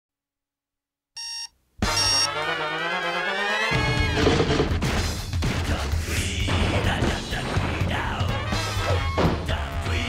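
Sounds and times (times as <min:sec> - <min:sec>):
digital alarm clock beeping: 0:01.2 - 0:02.3.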